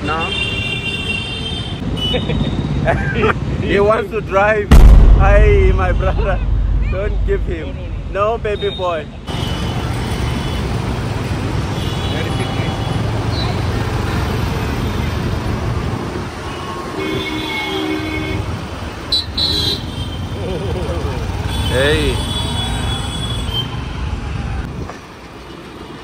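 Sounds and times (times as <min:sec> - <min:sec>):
vehicle horns honking: 0:16.4 - 0:20.2.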